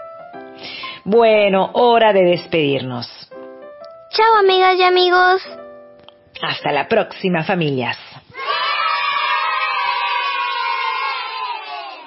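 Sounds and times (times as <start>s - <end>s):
children cheering and shouting: 8.3s - 12.0s.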